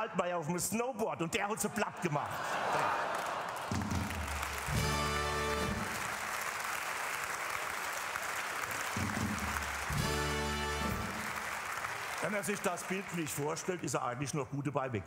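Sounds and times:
audience applauding: 2.3s - 14.2s.

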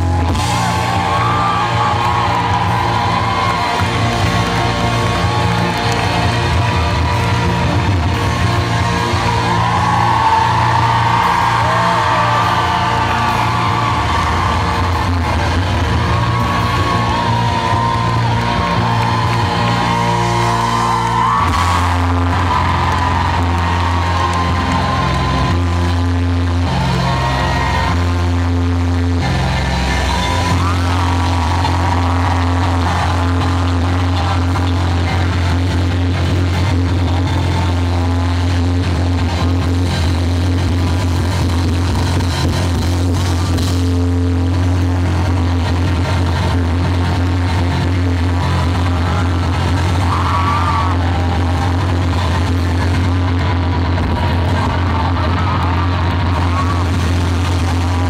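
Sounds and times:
bass line: 0.0s - 58.0s
live rock band: 0.0s - 58.0s.

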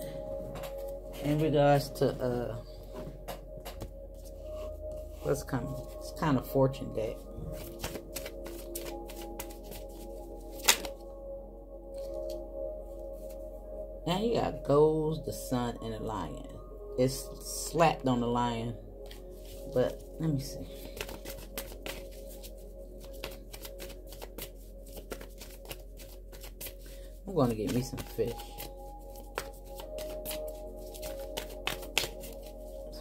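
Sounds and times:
quiet background music: 0.0s - 33.0s
cards being shuffled: 7.5s - 11.0s, 19.0s - 32.9s.

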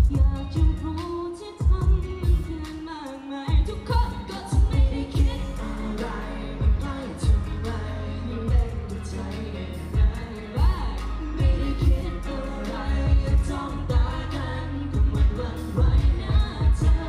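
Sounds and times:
low drum beats: 0.0s - 1.0s, 1.6s - 2.6s, 3.5s - 5.9s, 6.6s - 7.8s, 8.4s - 9.2s, 10.0s - 17.0s
live pop song singing: 0.0s - 17.0s.

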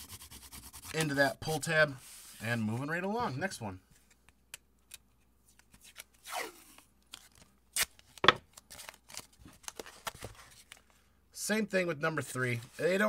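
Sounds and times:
tape crinkling: 5.0s - 11.0s.

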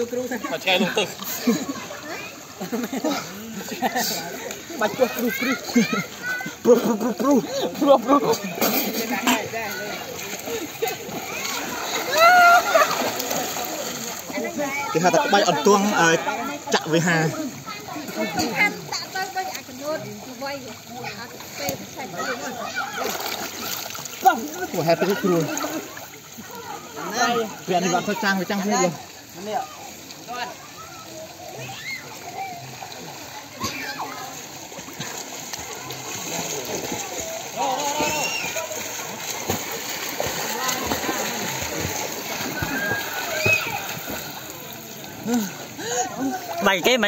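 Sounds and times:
water splashing in pool: 0.0s - 47.0s.

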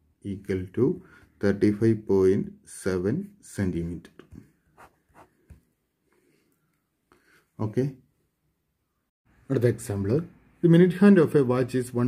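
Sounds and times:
pen scratching on paper: 4.8s - 5.4s.

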